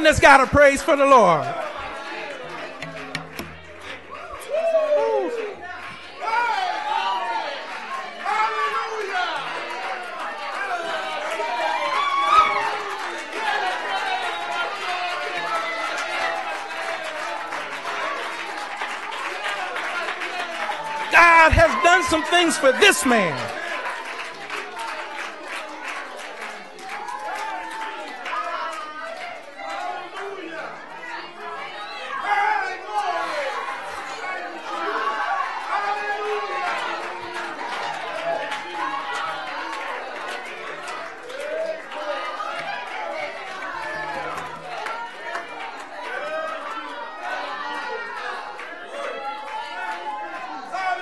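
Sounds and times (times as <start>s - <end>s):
people calling out overlapping: 21.1s - 23.5s.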